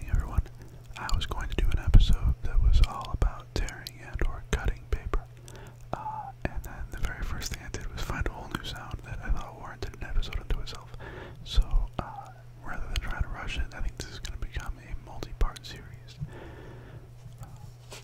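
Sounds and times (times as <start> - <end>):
close whispered speech: 0.0 - 16.2, 17.3 - 17.8
steady low hum: 0.0 - 18.0.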